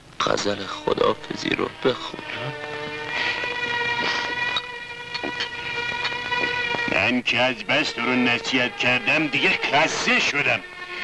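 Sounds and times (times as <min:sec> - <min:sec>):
sustained musical chord: 0:00.2 - 0:11.0.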